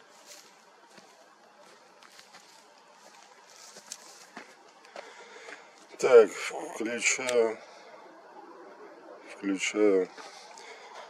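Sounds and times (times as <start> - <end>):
man speaking: 5.9 - 7.7, 9.3 - 10.2.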